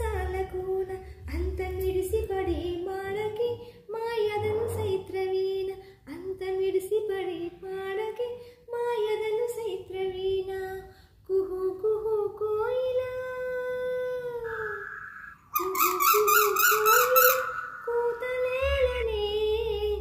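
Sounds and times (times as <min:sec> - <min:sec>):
woman singing unaccompanied: 0:00.0 - 0:14.8, 0:15.6 - 0:20.0
voice warbling: 0:14.0 - 0:20.0.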